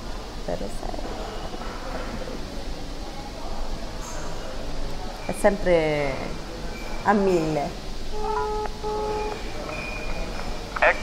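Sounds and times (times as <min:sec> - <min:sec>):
short electronic phone tones: 0:08.2 - 0:10.2.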